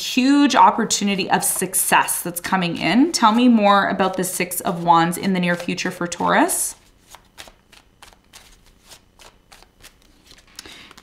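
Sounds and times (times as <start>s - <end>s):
cards being shuffled: 6.7s - 11.0s.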